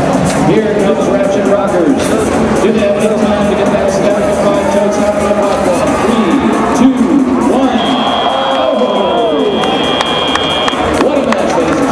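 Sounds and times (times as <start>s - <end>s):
crowd voices: 0.0s - 11.9s
high-pitched buzzer tone: 8.9s - 10.8s.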